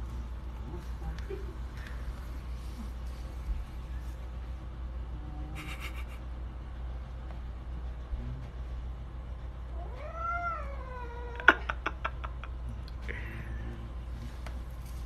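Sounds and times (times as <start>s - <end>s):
cat yowling: 9.7s - 11.7s.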